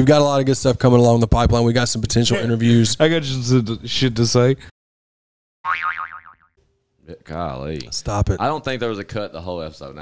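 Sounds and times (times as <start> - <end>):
cartoon boing: 5.6 - 6.5.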